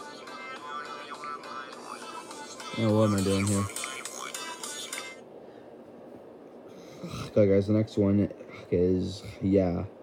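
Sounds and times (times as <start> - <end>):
music from a phone: 0.0 - 5.3
room noise hiss: 0.0 - 10.0.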